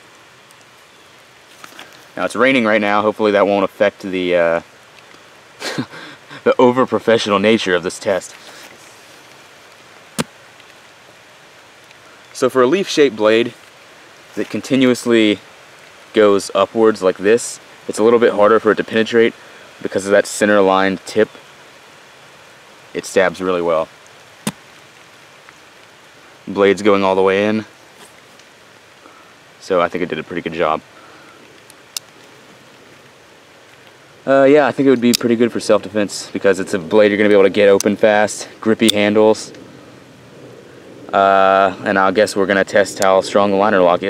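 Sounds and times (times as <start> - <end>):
rain hissing: 0.0 - 44.0.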